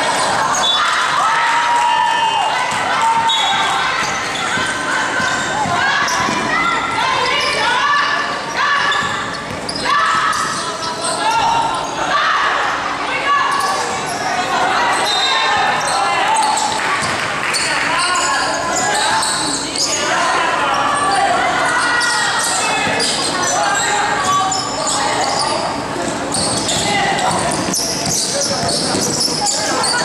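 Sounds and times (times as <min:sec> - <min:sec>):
babble of many voices: 0:00.0 - 0:30.0
basketball dribbling on gym floor: 0:26.4 - 0:29.4.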